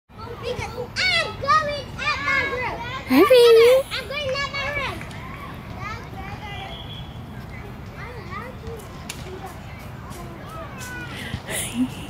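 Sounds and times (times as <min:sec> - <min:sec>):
children talking and calling out: 0:00.1 - 0:12.0.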